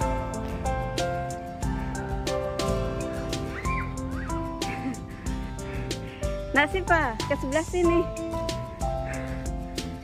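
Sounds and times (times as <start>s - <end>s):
background music with beat: 0.0s - 10.0s.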